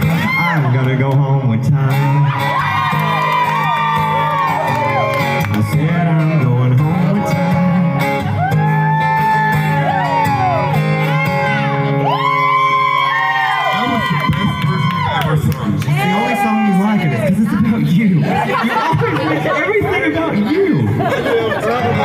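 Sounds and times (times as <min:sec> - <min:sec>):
man singing into a microphone: 0:00.0 - 0:03.0, 0:04.8 - 0:08.5
acoustic guitars playing: 0:00.0 - 0:22.0.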